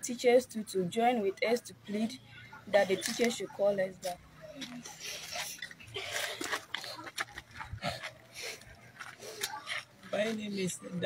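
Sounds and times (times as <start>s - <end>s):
people scuffing and rustling: 2.7s - 11.0s.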